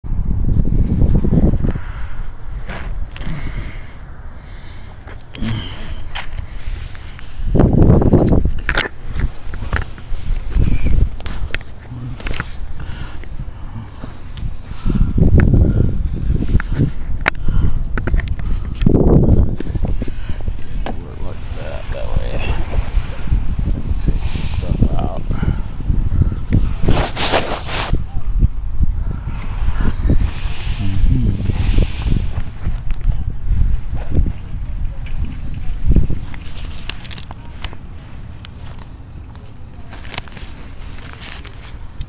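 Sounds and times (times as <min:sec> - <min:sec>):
camera rubbing against clothing: 0:06.1 - 0:12.8, 0:18.5 - 0:28.1, 0:29.3 - 0:39.0.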